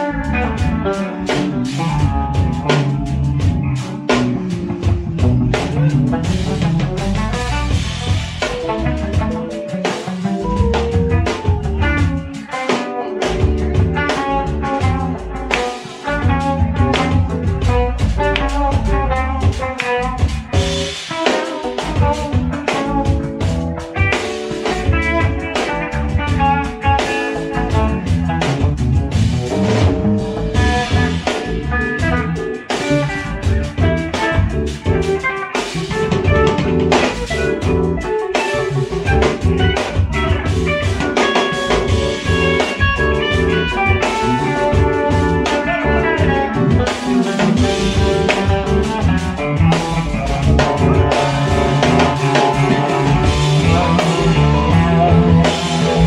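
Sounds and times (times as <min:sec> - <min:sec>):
live soul band: 0:00.0 - 0:56.0
guitar single-note lines: 0:29.6 - 0:56.0.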